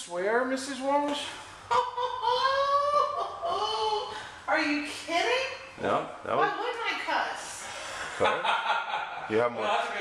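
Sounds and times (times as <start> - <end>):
person laughing in high voice: 1.7 - 4.0.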